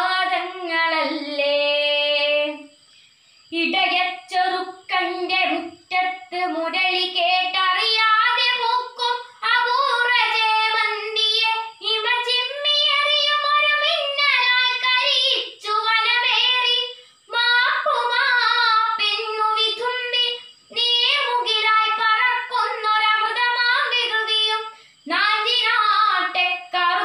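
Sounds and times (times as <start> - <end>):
girl chanting a poem: 3.5 - 27.0.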